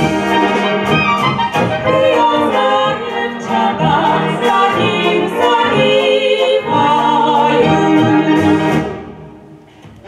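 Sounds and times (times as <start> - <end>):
brass band playing: 0.0 - 9.6
women singing: 1.6 - 8.7.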